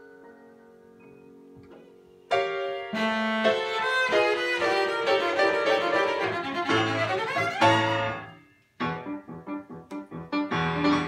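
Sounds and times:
grand piano: 0:00.0 - 0:11.0
cello: 0:02.9 - 0:08.3.

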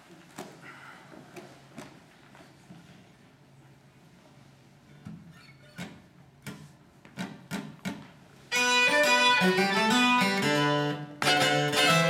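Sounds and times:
string band playing ragtime: 0:08.5 - 0:12.0.

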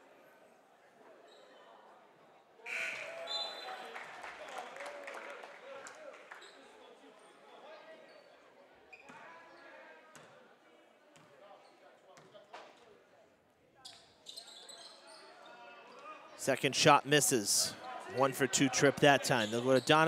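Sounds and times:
crowd voices in a gym: 0:00.0 - 0:20.0
sneakers squeaking: 0:08.9 - 0:09.2, 0:13.8 - 0:16.0, 0:19.1 - 0:20.0.

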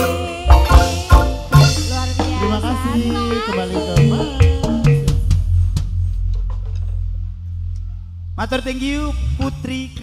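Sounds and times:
low bass note: 0:00.9 - 0:09.8.

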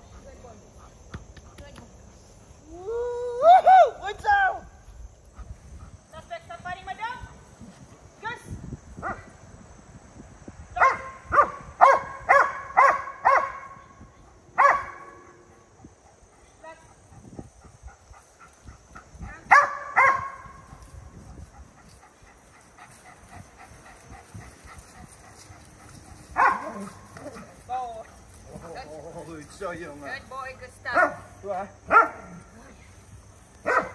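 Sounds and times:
dog barking: 0:10.8 - 0:13.8, 0:14.6 - 0:15.2, 0:19.4 - 0:20.5, 0:26.4 - 0:27.0, 0:30.9 - 0:31.2, 0:31.9 - 0:32.3, 0:33.6 - 0:33.9.

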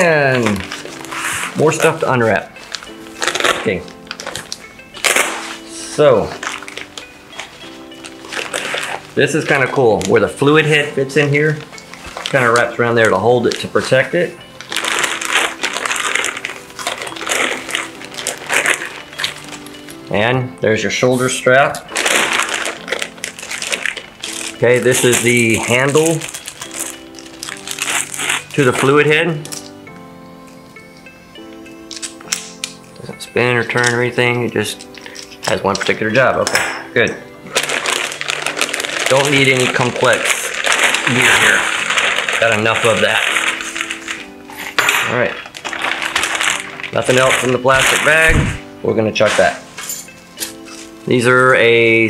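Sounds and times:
plastic wrapping crinkling: 0:00.0 - 0:52.0.

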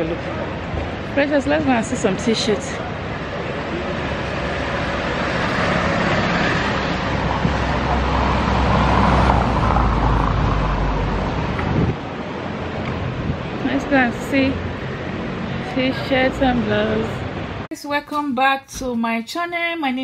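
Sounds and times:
passing cars: 0:00.0 - 0:17.7
vehicle engine rumbling: 0:00.0 - 0:17.7.

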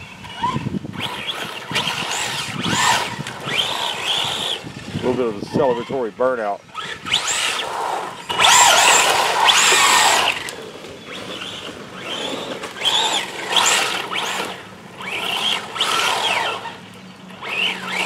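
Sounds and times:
electric motor whining: 0:00.0 - 0:18.0
tyres spinning on loose grit: 0:00.0 - 0:18.0.

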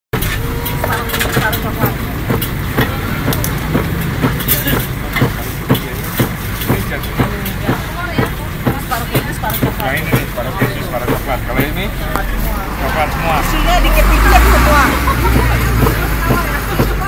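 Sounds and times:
faint voices: 0:00.2 - 0:17.0.

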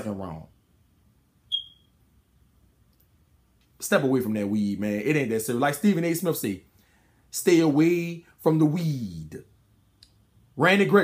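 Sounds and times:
short high-pitched chirp: 0:01.5 - 0:01.9.

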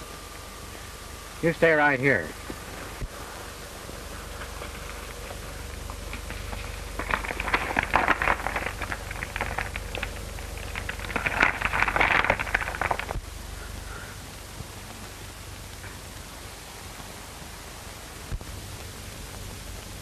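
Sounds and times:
film soundtrack hum and hiss: 0:00.0 - 0:20.0
footsteps on loose stones: 0:02.4 - 0:13.2.

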